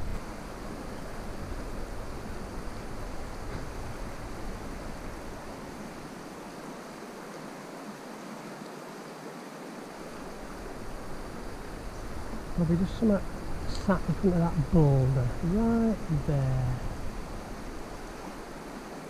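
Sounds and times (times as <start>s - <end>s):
river running over stones: 0.0s - 19.0s.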